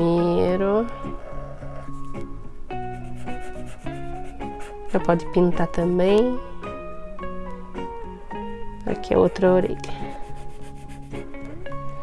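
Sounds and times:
soft guitar music: 0:00.0 - 0:12.0
marker scratching on paper: 0:02.9 - 0:05.1, 0:10.0 - 0:11.2.

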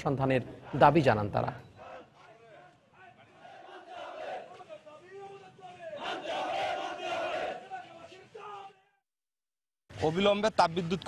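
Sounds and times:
crowd chanting slogans: 0:00.4 - 0:09.0.

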